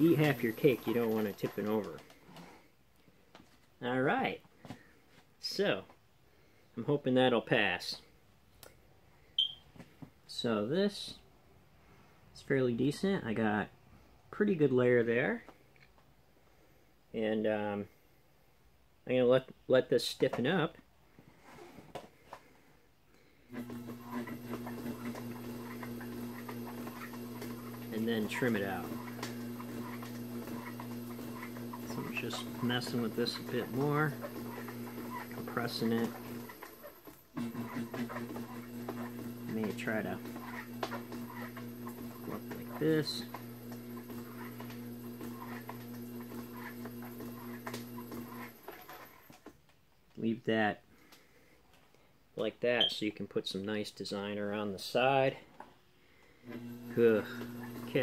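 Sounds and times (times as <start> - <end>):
pottery wheel humming: 0.0 - 2.8, 23.3 - 49.4, 56.4 - 58.0
short high-pitched beep: 9.4 - 9.6.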